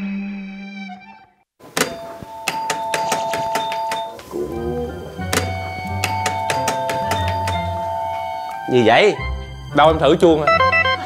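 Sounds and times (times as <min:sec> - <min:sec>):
doorbell chimes: 0:01.8 - 0:09.2
background music: 0:01.8 - 0:11.0.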